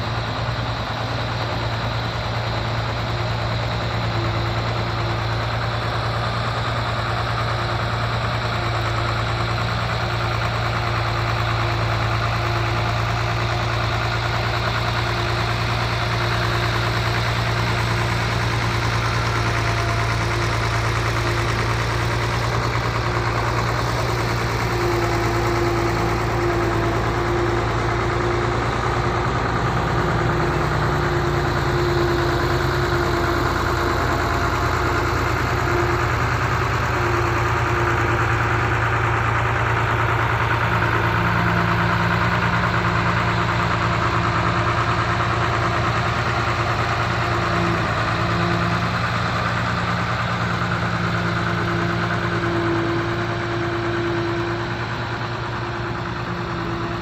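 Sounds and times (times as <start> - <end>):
heavy diesel machinery droning: 0.0 - 57.0.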